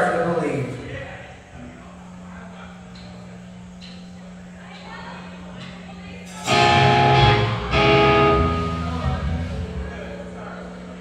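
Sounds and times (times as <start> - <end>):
amplifier electrical hum: 0.0 - 11.0.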